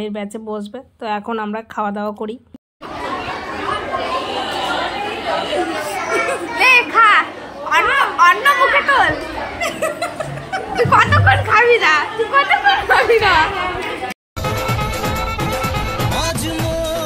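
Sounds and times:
women and children chattering: 2.8s - 14.2s.

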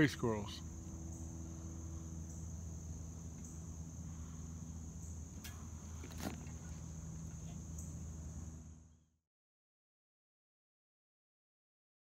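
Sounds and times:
insects droning: 0.0s - 9.2s
low hum: 0.0s - 9.2s.

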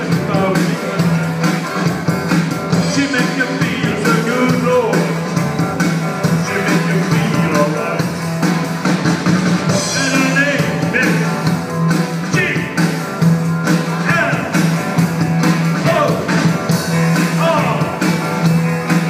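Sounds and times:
person singing: 0.0s - 1.2s, 2.8s - 5.3s, 6.3s - 8.2s, 9.7s - 11.5s, 17.2s - 18.1s
bass line: 0.0s - 19.0s
drum beat: 0.0s - 19.0s
rock band playing live: 0.0s - 19.0s.

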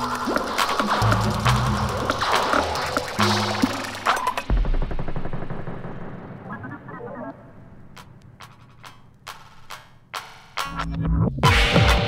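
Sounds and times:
experimental techno music: 0.0s - 12.0s.

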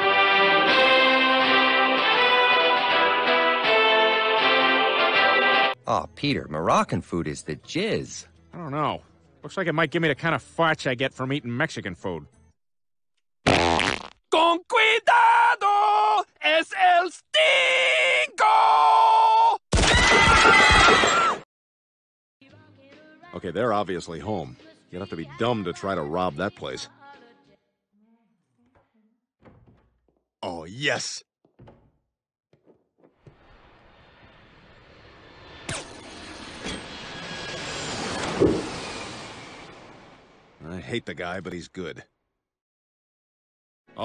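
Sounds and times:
cartoon man yelling: 14.3s - 19.6s
thump: 38.3s - 38.8s.

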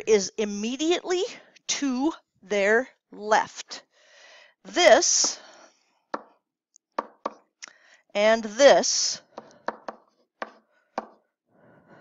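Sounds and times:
stylus tapping on screen: 6.2s - 6.4s, 7.0s - 7.5s, 9.4s - 11.2s.

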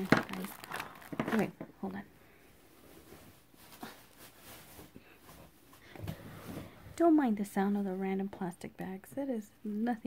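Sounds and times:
plastic bag rustling: 0.0s - 2.0s, 2.7s - 6.7s.

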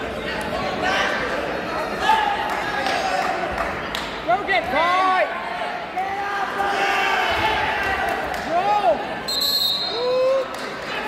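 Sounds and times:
referee whistle: 9.3s - 10.1s.

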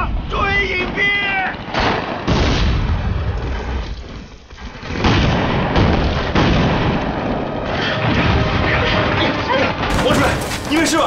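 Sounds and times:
bomb blasts: 0.1s - 9.2s.

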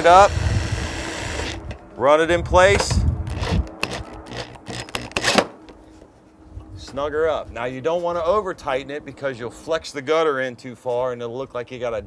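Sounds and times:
cordless drill driving screw: 0.0s - 1.6s, 3.3s - 5.5s.

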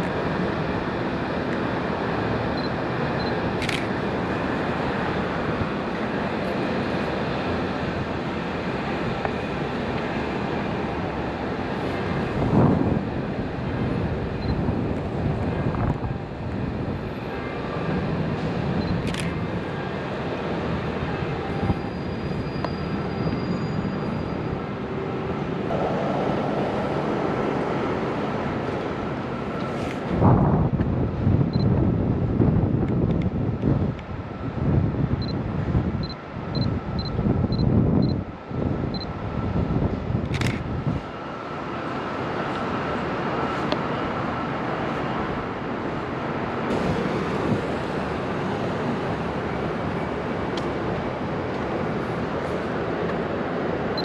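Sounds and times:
traffic noise: 0.0s - 54.0s
vehicles passing: 24.0s - 54.0s.

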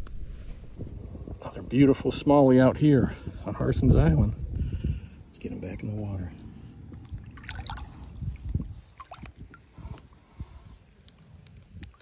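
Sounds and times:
water splashing and trickling: 5.6s - 12.0s.

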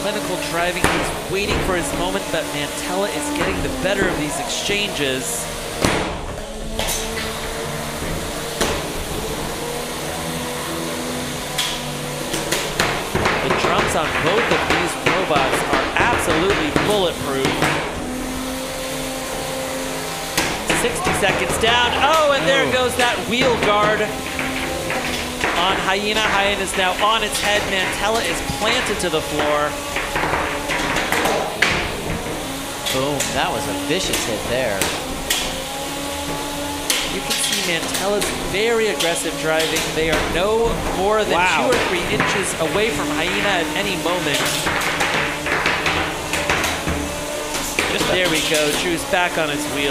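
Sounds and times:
spinning drums whining: 0.0s - 49.9s.

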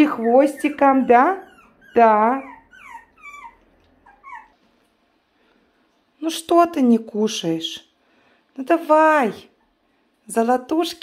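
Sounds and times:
dog whimpering: 0.0s - 4.6s.

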